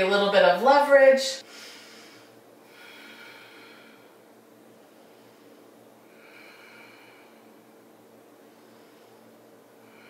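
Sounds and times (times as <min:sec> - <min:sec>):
faint human breathing: 0:01.4 - 0:10.0.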